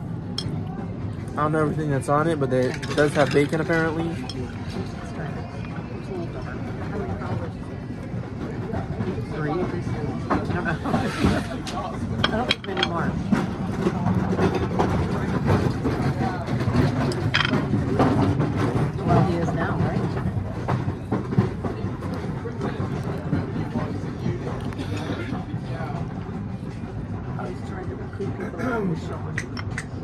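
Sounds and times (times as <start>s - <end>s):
diners' voices murmuring: 0.0s - 30.0s
clicks and knocks of plates: 2.6s - 4.9s, 10.3s - 23.8s, 29.3s - 30.0s.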